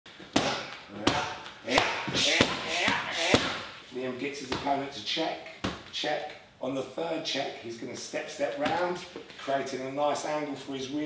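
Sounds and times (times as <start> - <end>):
strikes smacking pads: 0.3 - 3.7.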